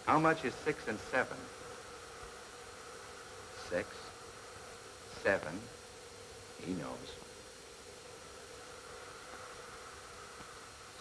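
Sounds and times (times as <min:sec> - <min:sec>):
faint hum with high tone: 0:00.0 - 0:11.0
person speaking: 0:06.6 - 0:07.3.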